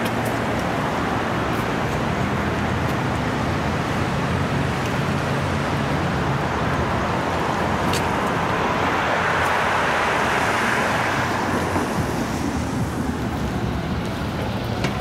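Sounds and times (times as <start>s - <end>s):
passing vehicles hiss: 0.0s - 15.0s
car passing by: 0.7s - 15.0s.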